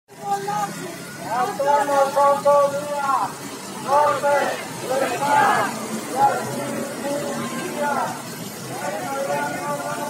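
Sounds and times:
crowd chanting slogan: 0:00.3 - 0:10.0.

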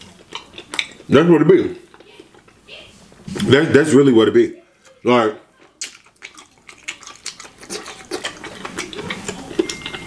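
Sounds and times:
wet chewing: 0:00.0 - 0:01.1, 0:04.8 - 0:10.0.

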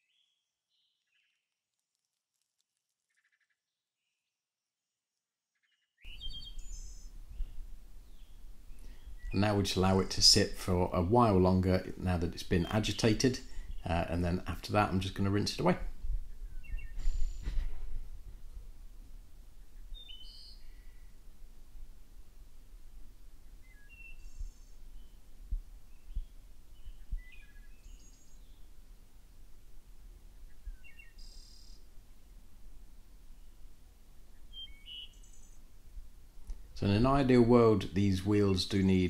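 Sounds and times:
birds chirping: 0:06.0 - 0:18.2, 0:19.5 - 0:21.3, 0:23.4 - 0:28.8, 0:30.3 - 0:31.9, 0:33.3 - 0:35.7, 0:36.5 - 0:39.0.

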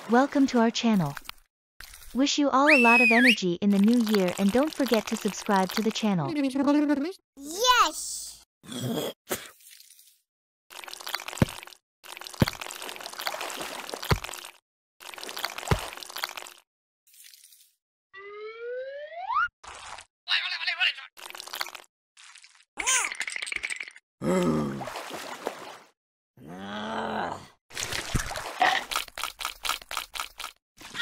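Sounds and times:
water trickling and sloshing: 0:00.0 - 0:03.0, 0:03.7 - 0:06.0, 0:09.5 - 0:17.8, 0:24.8 - 0:26.0, 0:27.7 - 0:31.0
voiced groan: 0:24.2 - 0:24.9, 0:26.4 - 0:27.6.

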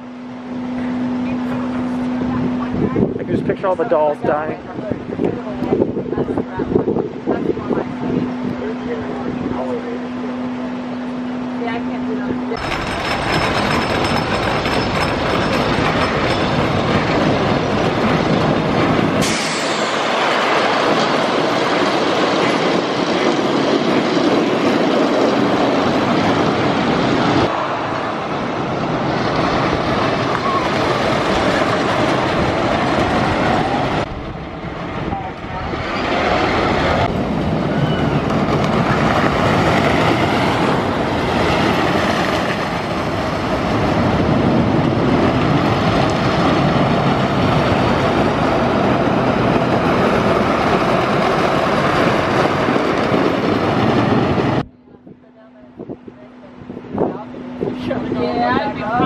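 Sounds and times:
roller coaster wheels rumbling: 0:00.0 - 0:59.0.

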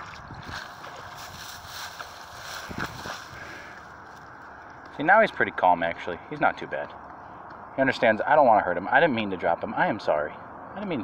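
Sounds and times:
wind on microphone: 0:00.0 - 0:03.6.

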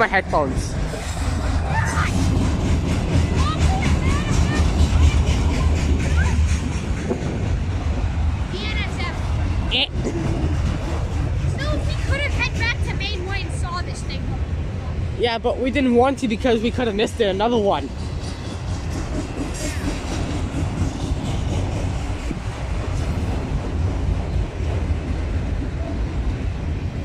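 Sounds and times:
train wheels rumbling on rails: 0:00.0 - 0:27.0.

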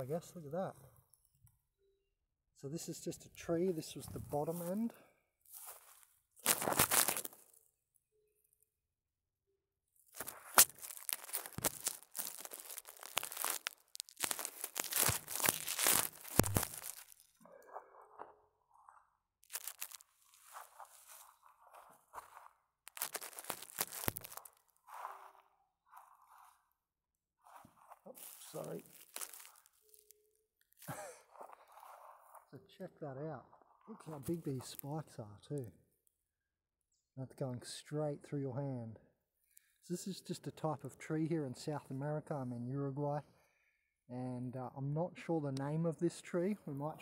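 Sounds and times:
dry grass and leaves crunching: 0:03.4 - 0:07.6, 0:10.1 - 0:26.6, 0:27.4 - 0:32.5, 0:33.5 - 0:35.0
person laughing: 0:30.8 - 0:31.3.

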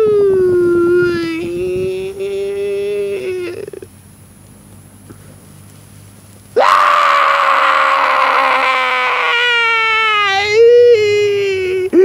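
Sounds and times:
person screaming: 0:06.6 - 0:12.0.

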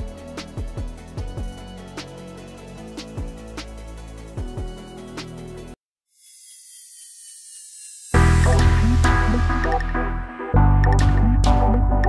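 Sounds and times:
hissing riser effect: 0:06.2 - 0:09.9.

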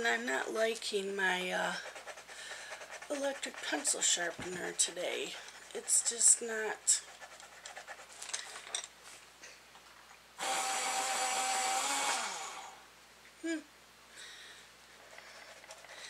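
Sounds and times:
electric pencil sharpener grinding: 0:10.4 - 0:12.8.

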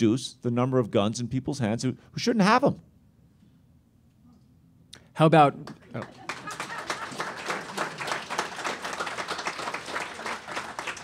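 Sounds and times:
audience applauding: 0:05.6 - 0:11.0.

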